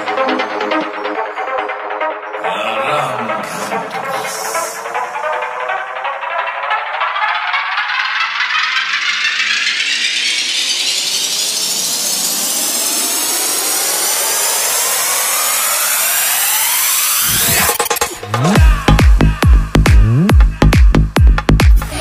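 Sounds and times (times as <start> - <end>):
noisy synth riser: 3.4 - 20.3.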